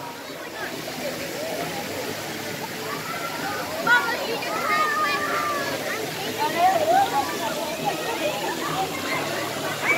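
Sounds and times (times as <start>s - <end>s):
many voices chattering: 0.0s - 9.9s
water rushing and sloshing: 0.0s - 9.9s.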